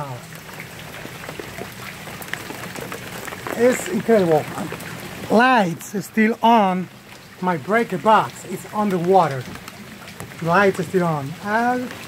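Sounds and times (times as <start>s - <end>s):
rain falling on water: 0.0s - 12.0s.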